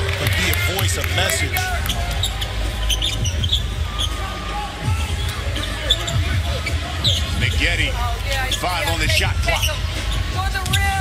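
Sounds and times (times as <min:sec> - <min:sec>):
arena crowd rumble: 0:00.0 - 0:11.0
faint voices: 0:00.0 - 0:11.0.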